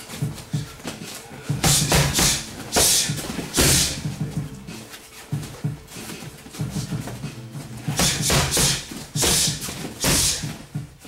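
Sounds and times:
punches and kicks hitting pads: 0:00.2 - 0:04.6, 0:05.4 - 0:10.9.

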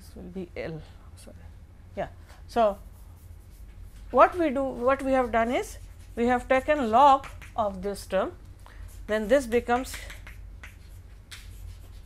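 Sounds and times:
steady low hum: 0:00.0 - 0:12.0
chalk scratching on blackboard: 0:02.6 - 0:07.6, 0:08.9 - 0:12.0
chalk tap: 0:05.8 - 0:07.8, 0:09.2 - 0:12.0.

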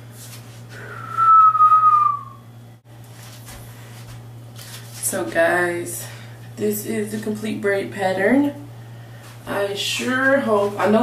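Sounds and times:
person whistling a long note: 0:00.8 - 0:02.4.

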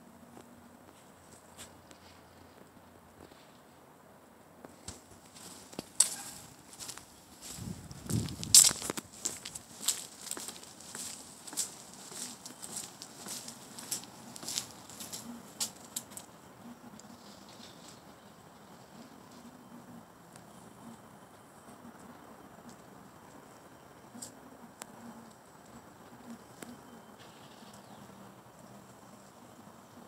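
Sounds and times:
footsteps on concrete: 0:04.7 - 0:15.2.

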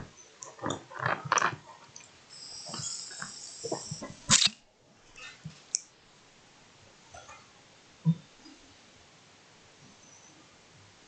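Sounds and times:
steady high hiss: 0:02.0 - 0:06.9.

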